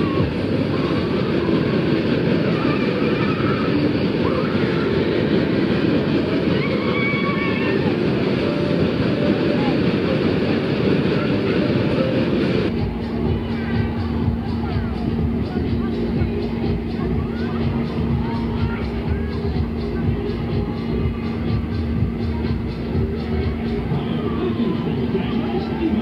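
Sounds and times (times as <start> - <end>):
fairground ride rumbling din: 0.0 - 26.0.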